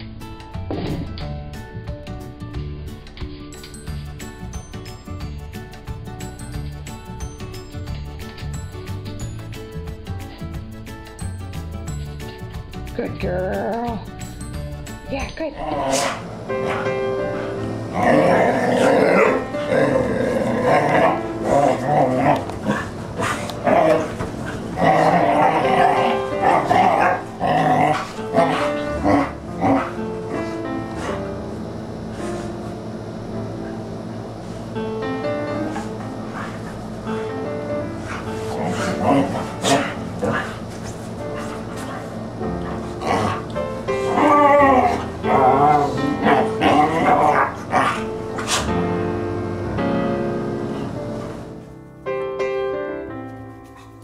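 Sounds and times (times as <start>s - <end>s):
background music: 0.0s - 54.0s
dogs play-growling: 15.6s - 51.6s.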